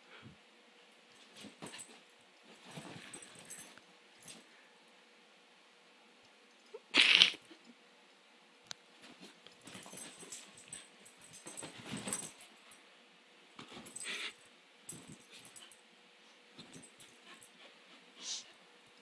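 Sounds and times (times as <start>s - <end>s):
dog scuffling and rustling: 1.2s - 4.4s, 8.9s - 12.7s.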